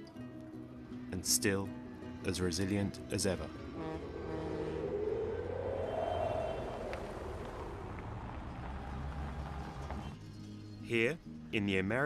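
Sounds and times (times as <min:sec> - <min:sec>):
steady low rumble: 0:03.5 - 0:09.4
vehicle passing by: 0:03.6 - 0:10.1.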